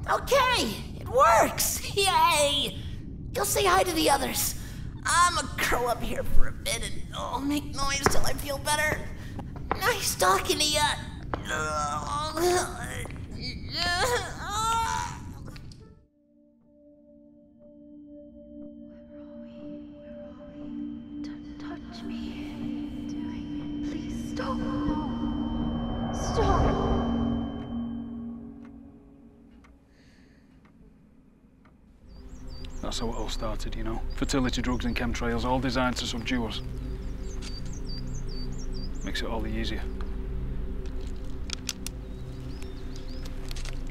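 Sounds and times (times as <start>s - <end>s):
low rumble: 0.0s - 14.6s, 20.0s - 29.6s, 32.1s - 43.9s
low musical drone: 16.3s - 30.1s, 32.1s - 43.9s
small bird chirping: 32.1s - 43.9s.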